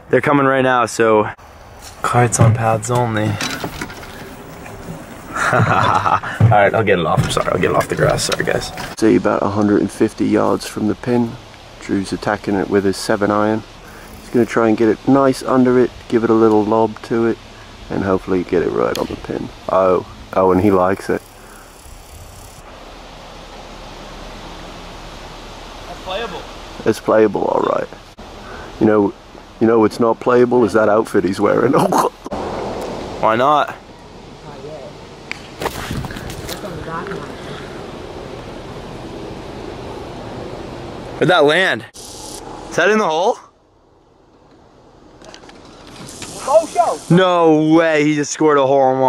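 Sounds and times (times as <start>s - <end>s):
outdoor background noise: 0.0s - 49.0s.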